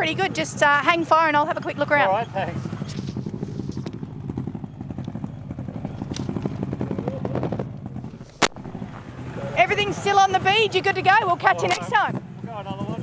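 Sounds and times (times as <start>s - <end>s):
car engine idling: 0.0s - 13.0s
sharp bang: 8.3s - 9.3s.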